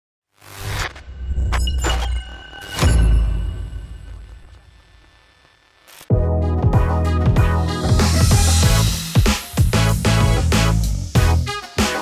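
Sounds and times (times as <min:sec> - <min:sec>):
glitchy noise bursts: 0:00.3 - 0:02.7, 0:03.7 - 0:06.1.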